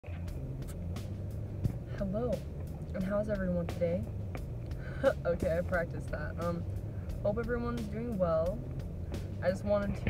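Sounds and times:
car engine and road drone: 0.0 - 10.0.

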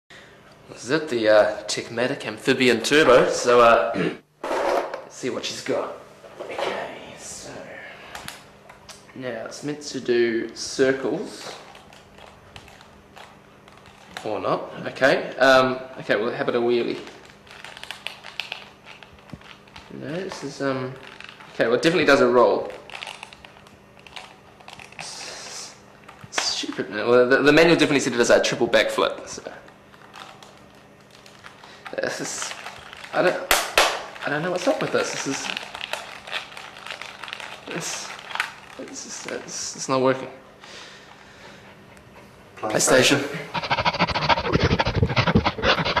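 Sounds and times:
faint steady hum: 0.1 - 46.0
dog claws tapping and scuffing: 43.6 - 46.0.

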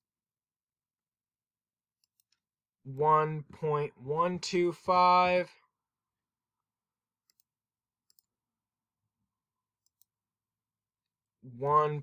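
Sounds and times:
computer mouse clicks: 2.0 - 2.4, 7.2 - 7.5, 8.1 - 8.3, 9.8 - 10.2.

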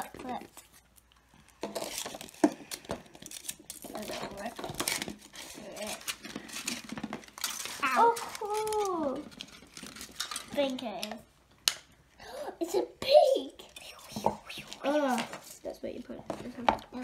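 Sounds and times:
foil wrapper crinkling: 0.0 - 11.2.

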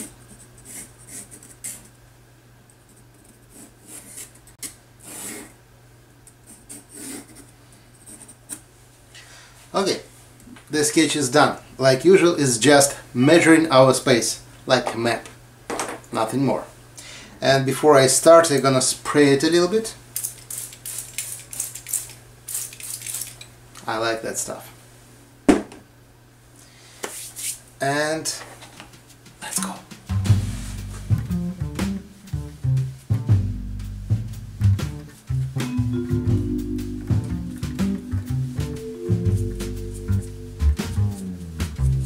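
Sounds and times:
pencil scratching on rough paper: 0.0 - 1.9, 2.9 - 5.6, 6.4 - 8.6.

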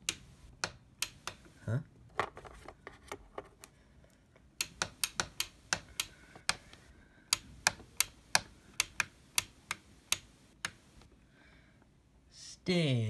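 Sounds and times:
light switch clicking: 4.6 - 6.6, 7.3 - 10.8.

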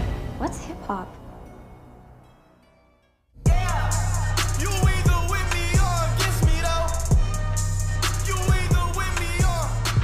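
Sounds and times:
dramatic soundtrack music: 0.0 - 10.0.

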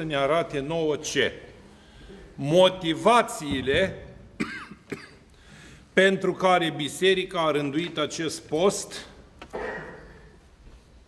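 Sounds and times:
man coughing: 4.4 - 5.3, 9.5 - 10.4.

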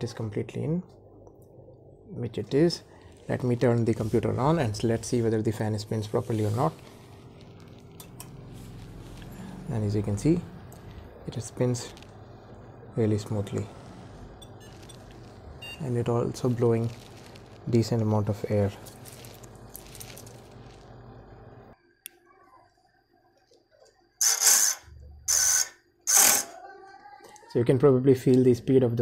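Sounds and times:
computer fan humming: 0.0 - 22.1.

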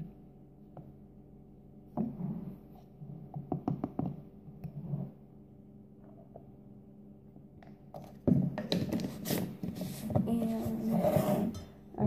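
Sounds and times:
woman's voice: 10.1 - 12.0.

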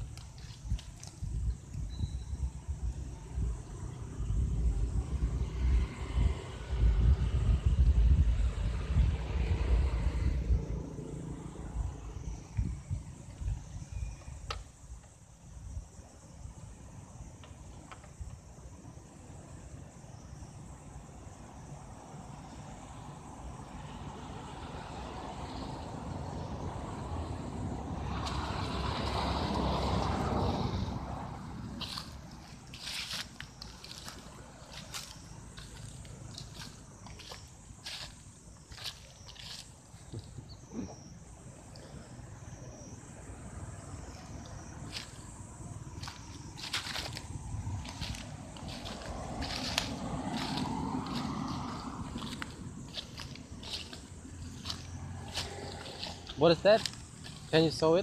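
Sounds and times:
outdoor rumbling: 0.0 - 58.0
vehicle passing: 3.3 - 12.5, 21.8 - 58.0.

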